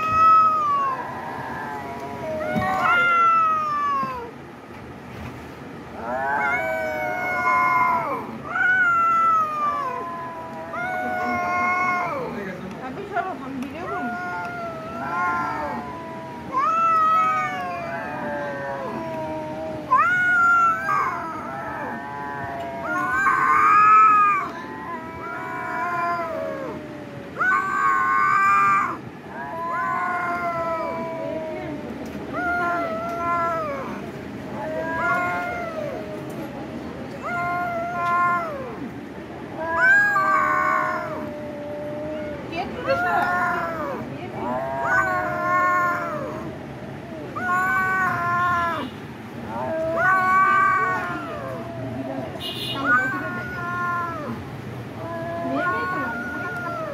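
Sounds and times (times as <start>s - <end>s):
cat meowing: 0.0s - 4.3s, 6.0s - 12.5s, 13.7s - 56.9s.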